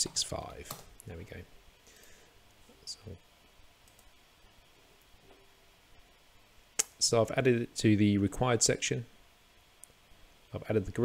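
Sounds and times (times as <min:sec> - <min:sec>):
computer mouse clicks: 0:03.8 - 0:04.1.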